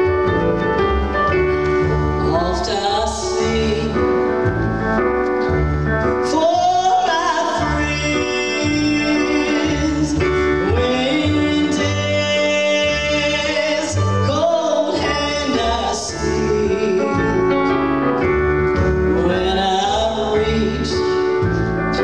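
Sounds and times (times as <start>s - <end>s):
keyboard: 0.0s - 22.0s
upright bass: 0.0s - 22.0s
person singing: 1.9s - 4.5s, 6.2s - 17.8s, 18.9s - 22.0s.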